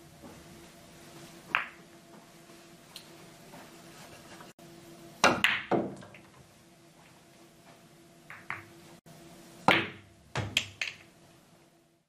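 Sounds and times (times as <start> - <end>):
cue striking ball: 1.5 - 1.8, 5.2 - 6.0, 9.7 - 11.0
pool balls clacking: 1.5 - 1.8, 5.2 - 6.4, 8.3 - 8.8, 9.6 - 11.2.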